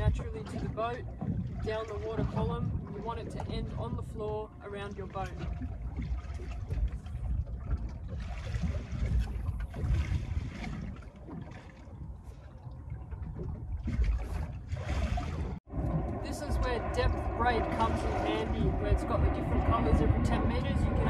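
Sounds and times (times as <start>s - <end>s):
water lapping against hull: 0.0s - 21.0s
wind buffeting microphone: 0.0s - 21.0s.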